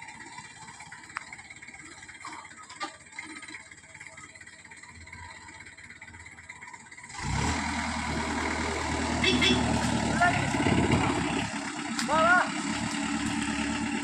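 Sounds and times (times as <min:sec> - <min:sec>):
loud engine running: 0:00.0 - 0:14.0.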